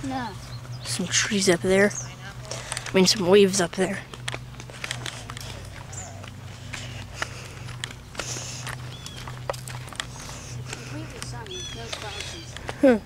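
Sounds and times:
steady low hum: 0:00.0 - 0:13.0
footsteps on concrete: 0:02.4 - 0:13.0.

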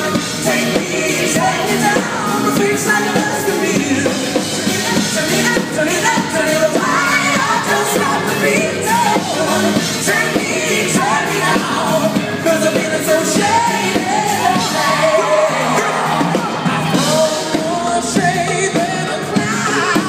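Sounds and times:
live pop-rock band playing: 0:00.0 - 0:20.0
man singing into microphone: 0:17.0 - 0:20.0.

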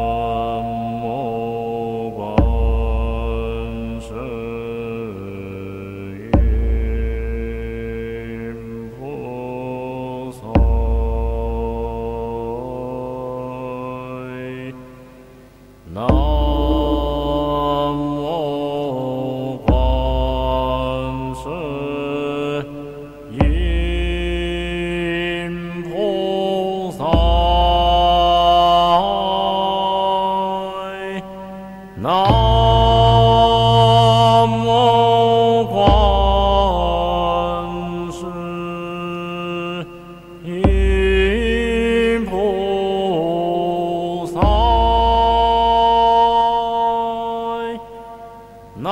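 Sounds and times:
sustained instrumental tones: 0:00.0 - 0:04.6, 0:16.0 - 0:18.5, 0:31.5 - 0:37.8
melodic sung chant: 0:00.0 - 0:48.9.

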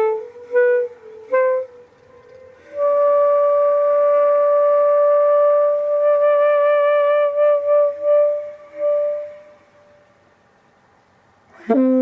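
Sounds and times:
saxophone holding long note: 0:11.5 - 0:12.0.

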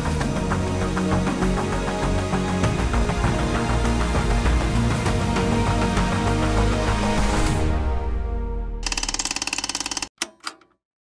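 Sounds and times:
mechanical clatter: 0:08.8 - 0:10.8.

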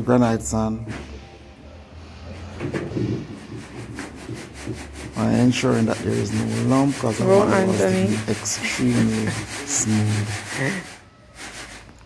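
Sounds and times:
sand sieve scraping on concrete: 0:02.8 - 0:12.0.

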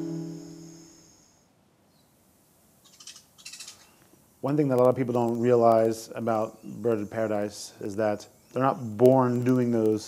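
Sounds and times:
acoustic guitar chord ringing: 0:00.0 - 0:01.0
high bird calls: 0:02.8 - 0:04.0.

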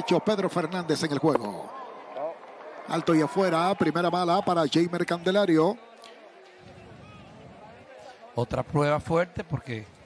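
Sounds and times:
faint stadium crowd murmur: 0:00.0 - 0:10.0.

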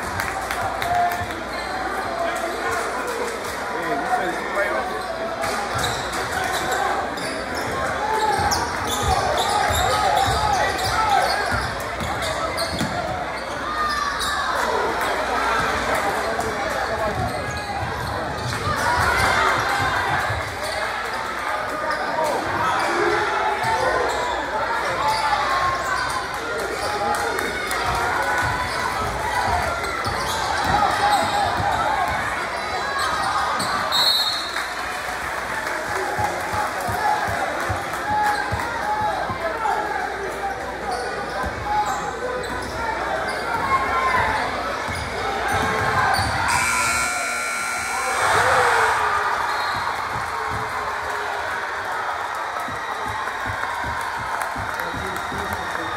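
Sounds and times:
voices and shouts echoing: 0:00.0 - 0:55.9.

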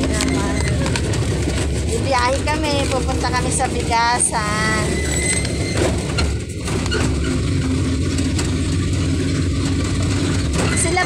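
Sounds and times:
road noise: 0:00.0 - 0:11.0
vehicle engine running: 0:00.0 - 0:11.0.

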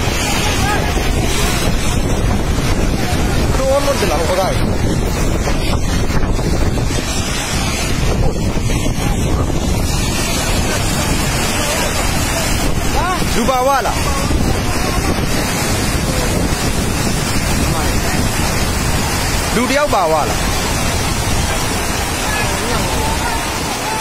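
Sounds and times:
rushing mud and water: 0:00.0 - 0:24.0
wind buffeting microphone: 0:00.0 - 0:24.0.

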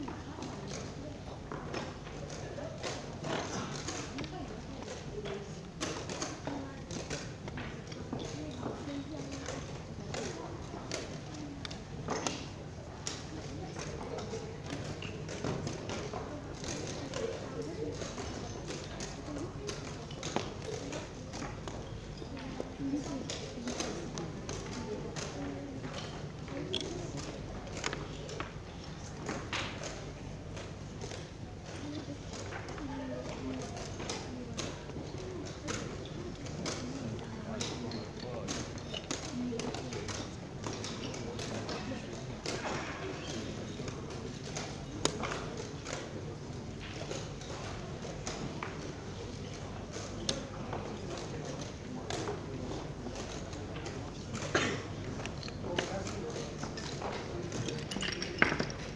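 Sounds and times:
voices chattering in a hall: 0:00.0 - 0:58.9
chess pieces knocking on board: 0:53.7 - 0:58.9.

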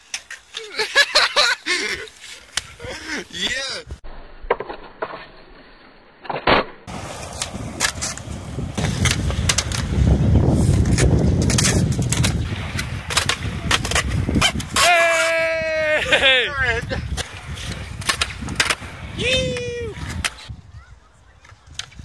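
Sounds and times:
skateboard wheels rolling on concrete: 0:00.0 - 0:22.0.

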